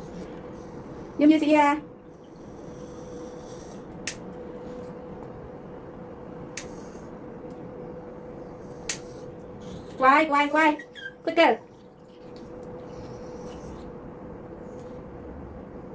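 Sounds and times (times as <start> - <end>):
faint hum: 0.0 - 15.9.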